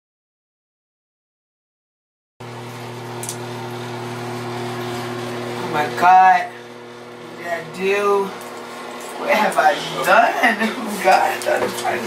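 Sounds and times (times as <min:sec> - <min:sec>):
appliance electrical hum: 0:02.4 - 0:12.0.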